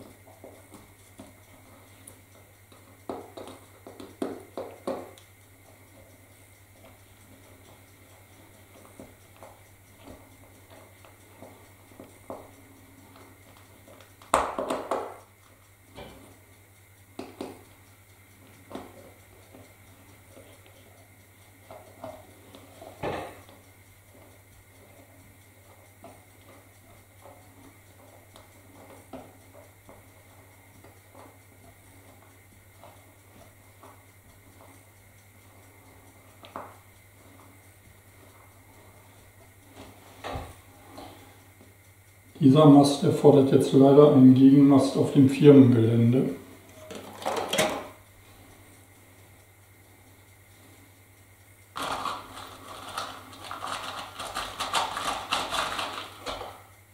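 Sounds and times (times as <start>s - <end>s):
small clicks of hand work: 0.0s - 42.4s
low steady hum: 0.0s - 56.9s.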